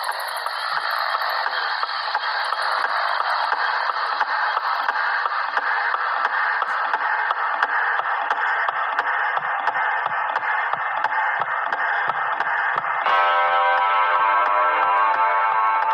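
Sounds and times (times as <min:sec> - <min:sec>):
fast ticking beat: 0:00.0 - 0:13.1.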